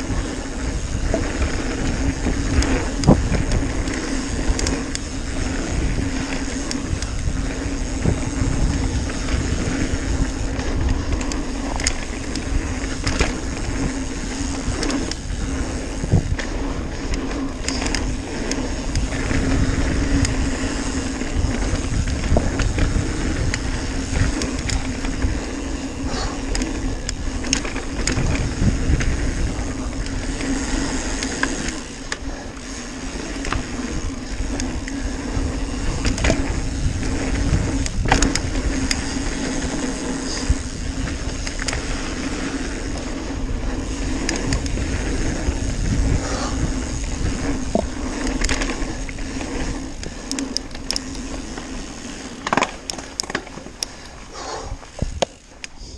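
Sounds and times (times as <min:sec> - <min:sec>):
bike rattling and knocking: 0:00.0 - 0:55.9
tyre and wind noise: 0:00.0 - 0:55.9.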